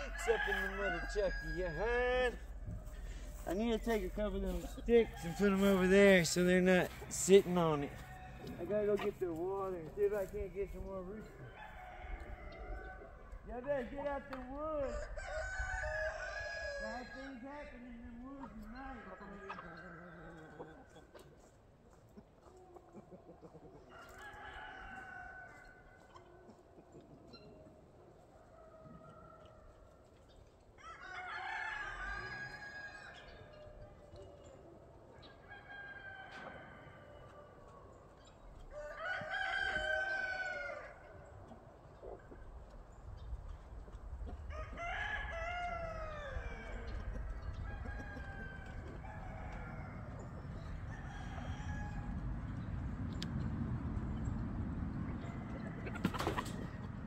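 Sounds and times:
rooster crowing: 0:00.0 - 0:03.5, 0:07.8 - 0:08.6, 0:11.4 - 0:13.2, 0:14.8 - 0:17.4, 0:30.8 - 0:33.2, 0:35.3 - 0:37.4, 0:38.7 - 0:41.1, 0:44.5 - 0:47.0, 0:47.6 - 0:52.2.

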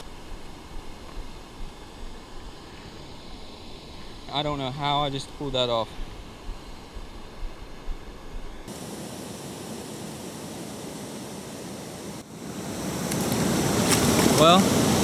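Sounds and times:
flowing water rushing: 0:08.7 - 0:15.0.

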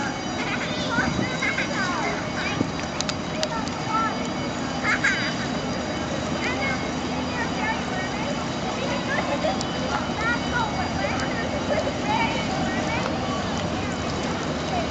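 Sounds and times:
deck machinery: 0:00.0 - 0:14.9
people talking nearby: 0:00.0 - 0:14.9
ship engines droning: 0:00.0 - 0:14.9.

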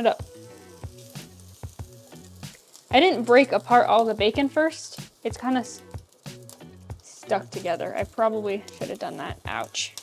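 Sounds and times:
bacon sizzling in a frying pan: 0:00.0 - 0:10.0.

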